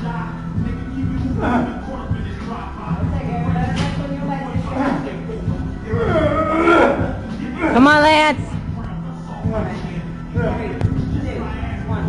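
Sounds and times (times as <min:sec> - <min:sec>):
background music: 0:00.0 - 0:12.0
indistinct voices: 0:00.9 - 0:12.0.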